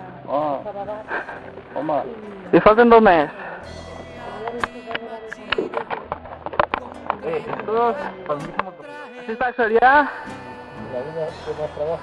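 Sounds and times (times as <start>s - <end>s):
background music with held notes: 0.0s - 12.0s
quiet voices talking: 0.0s - 12.0s.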